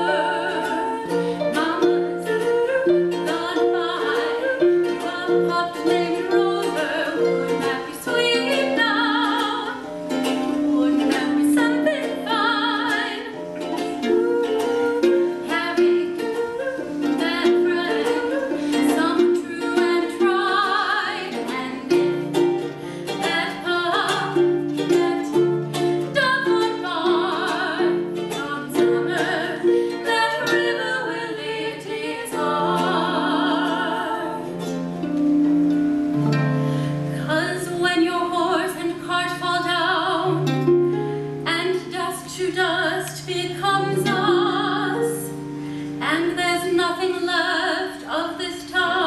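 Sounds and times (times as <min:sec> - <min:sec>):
woman singing with vibrato: 0:00.0 - 0:35.0, 0:36.7 - 0:49.0
harp playing: 0:00.0 - 0:49.0
ukulele playing: 0:00.0 - 0:49.0.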